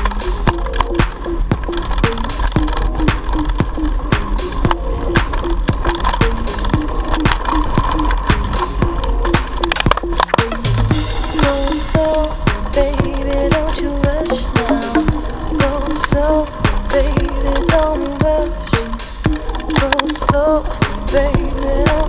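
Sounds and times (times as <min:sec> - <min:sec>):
background music with steady beat: 0:00.0 - 0:22.0.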